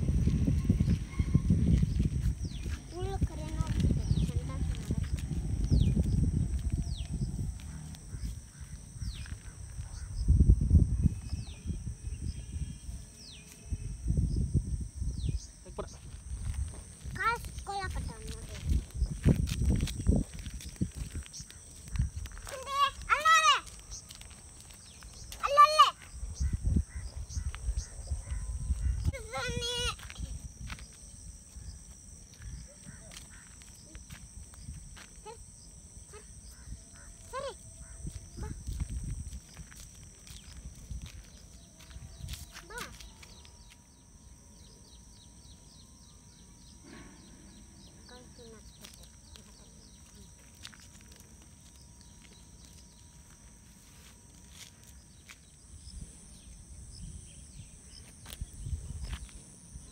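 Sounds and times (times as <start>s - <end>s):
wind rumble on microphone: 0.0s - 23.2s, 26.0s - 43.5s, 55.5s - 59.9s.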